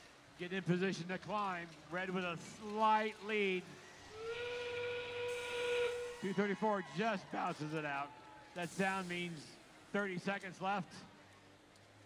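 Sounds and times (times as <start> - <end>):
steady whistle-like warning tone: 4.0 - 6.8.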